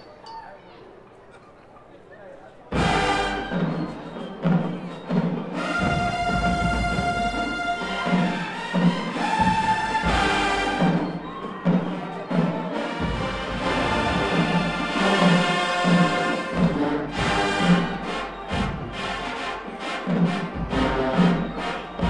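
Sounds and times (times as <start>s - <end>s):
marching band playing: 2.7s - 22.0s
sharp percussion hits: 2.8s - 22.0s.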